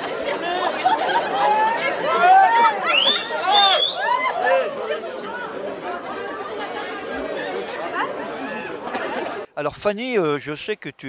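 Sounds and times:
crowd chatter: 0.0s - 9.9s.

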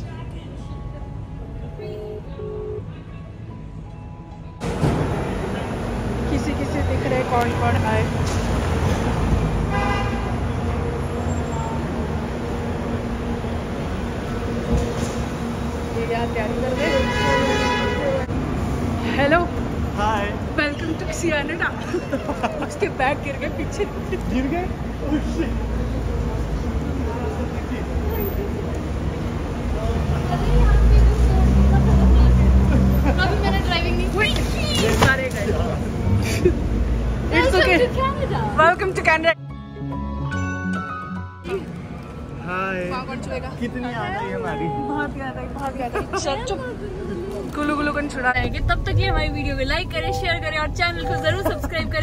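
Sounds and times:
traffic rumble: 0.0s - 40.1s, 41.1s - 52.0s
car horn toot: 1.8s - 3.0s, 9.7s - 10.4s, 16.8s - 18.3s.

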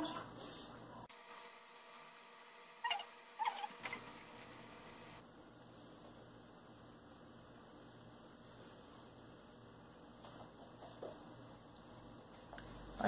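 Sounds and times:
faint room noise: 0.0s - 13.0s.

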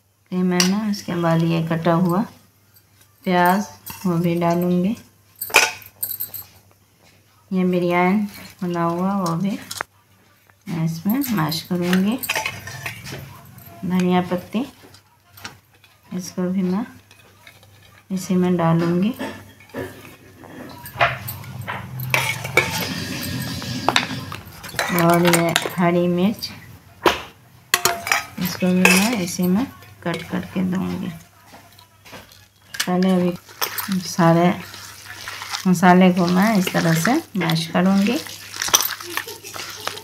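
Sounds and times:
metal bowl clinking: 0.6s - 2.4s, 3.0s - 6.6s, 10.9s - 26.7s, 27.7s - 40.0s
metal utensils scraping and clattering: 3.0s - 6.7s, 8.0s - 9.9s, 11.0s - 26.7s, 27.7s - 40.0s
wet squelching of mashed meat: 33.2s - 40.0s.

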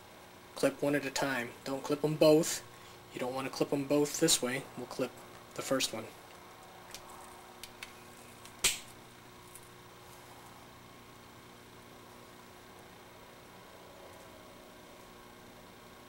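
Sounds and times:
steady low hum: 0.0s - 16.0s
side cutters snipping wire: 7.6s - 9.0s.

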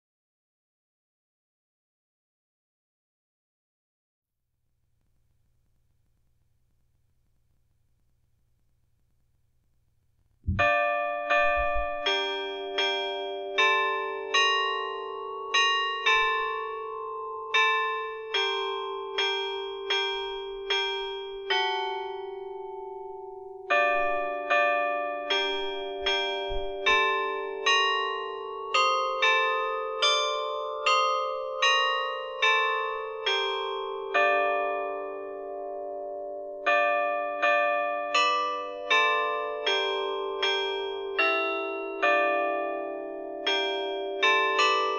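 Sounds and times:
bells ringing: 10.6s - 44.9s.

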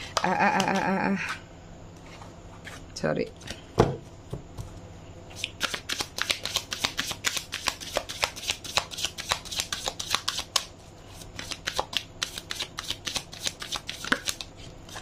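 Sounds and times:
cards shuffling and riffling: 5.4s - 15.0s.

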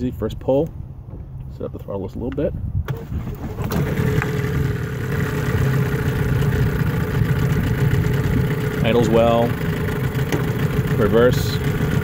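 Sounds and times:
outboard motor starting and idling: 2.8s - 12.0s.

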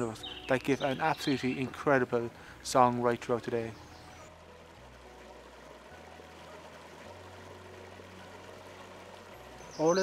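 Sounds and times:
low humming tones: 0.0s - 10.0s
river water rushing: 0.0s - 10.0s.

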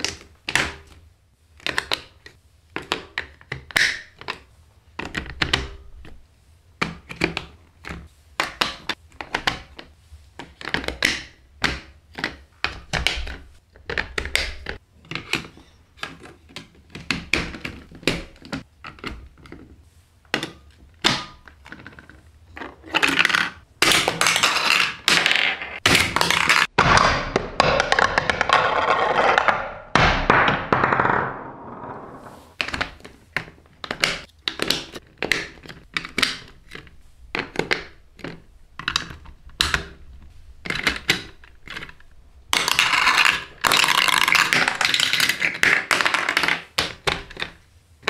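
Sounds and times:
plastic pieces clicking: 40.6s - 47.6s.

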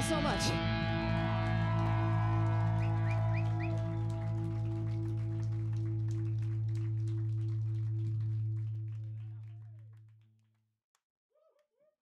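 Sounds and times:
bass and guitars ringing low note: 0.0s - 9.6s.

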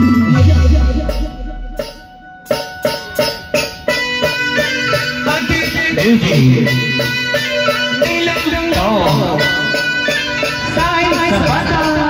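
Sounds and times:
electronic keyboard tune: 0.0s - 12.0s.

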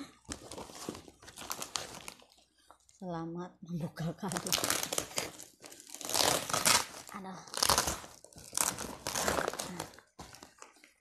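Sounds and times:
plastic wrap and paper crinkling: 0.0s - 3.2s, 4.1s - 11.0s.

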